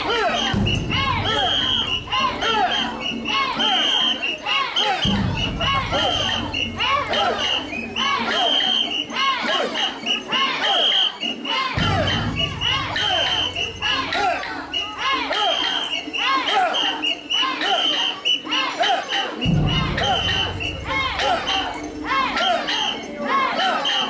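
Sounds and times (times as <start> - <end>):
shrill whistle blasts: 0.0 - 18.8, 20.0 - 21.8
group shouting rhythmic chant: 0.0 - 24.0.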